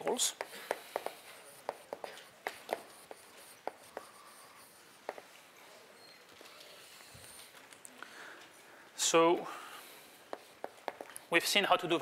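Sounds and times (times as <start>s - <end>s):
chalk tapping and scraping on blackboard: 0.1s - 5.5s, 10.2s - 11.6s.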